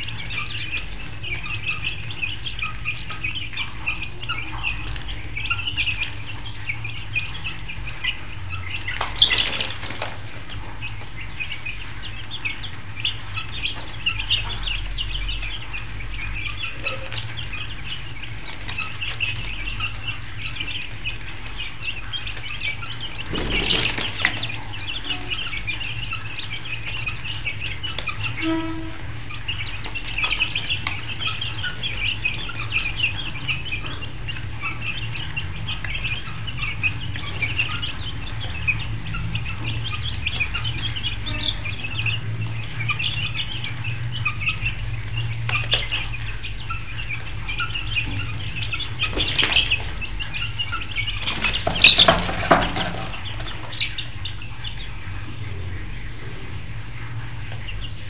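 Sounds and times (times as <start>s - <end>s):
many birds chirping: 0.0s - 58.0s.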